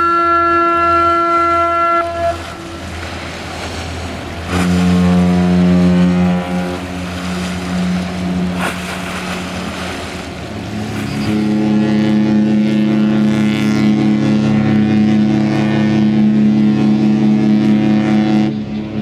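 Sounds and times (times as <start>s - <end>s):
ship's horn blast: 0.0s - 19.0s.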